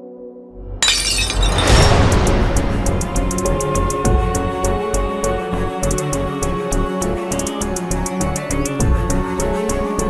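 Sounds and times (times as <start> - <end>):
glass shattering crash: 0.8 - 2.4.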